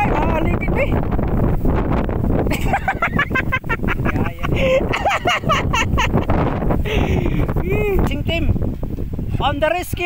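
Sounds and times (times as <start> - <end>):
wind on microphone: 0.0 - 10.0.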